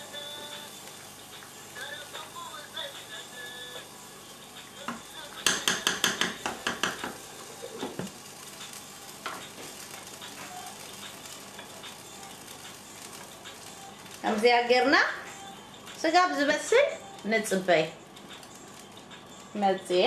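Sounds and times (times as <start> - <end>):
soup simmering hiss: 0.0 - 17.3
wooden spoon clacking against pot: 5.4 - 7.2.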